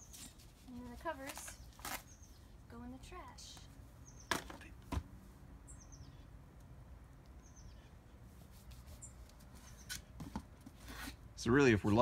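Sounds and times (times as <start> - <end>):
faint outdoor background: 0.0 - 12.0
bird chirps: 2.0 - 2.5, 4.0 - 4.4, 5.6 - 6.4, 7.3 - 8.0.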